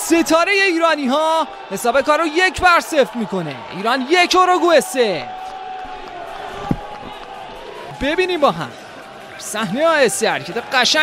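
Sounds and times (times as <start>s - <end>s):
broadcast background noise: 0.0s - 11.0s
thump: 6.6s - 7.2s.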